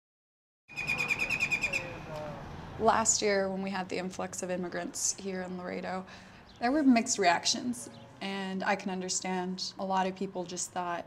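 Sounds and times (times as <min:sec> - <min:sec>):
bird chattering trill: 0:00.7 - 0:02.0.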